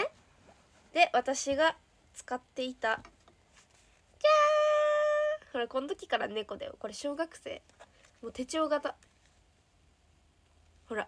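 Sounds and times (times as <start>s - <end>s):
young woman's high-pitched voice: 4.2s - 7.6s.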